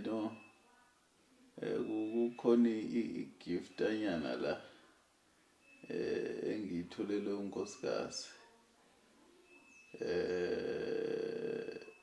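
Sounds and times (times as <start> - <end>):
man's drawn-out vocal sound: 5.9 - 6.8, 10.0 - 11.9.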